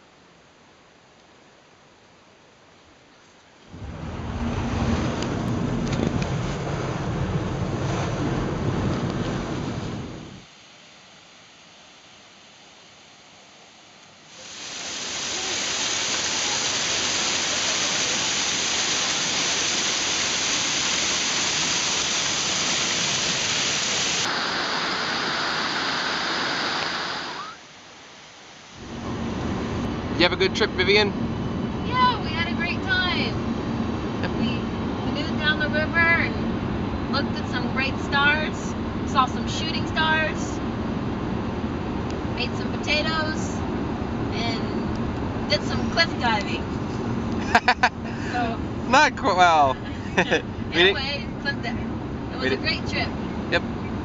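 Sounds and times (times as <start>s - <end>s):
car cabin road rumble: 3.6s - 10.4s, 28.8s - 54.0s
low rumble: 3.7s - 10.4s, 28.8s - 49.1s
waterfall rushing onto rocks: 14.3s - 27.4s.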